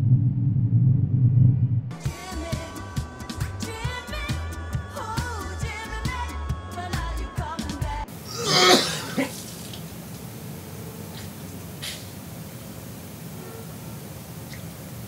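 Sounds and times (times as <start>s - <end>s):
song with low beat: 1.9s - 8.1s
man retching: 8.2s - 9.5s.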